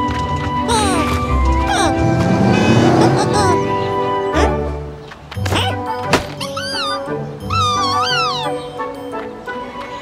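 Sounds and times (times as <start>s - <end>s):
cartoon background music: 0.0s - 10.0s
squeaky creature vocalizations: 5.4s - 8.7s.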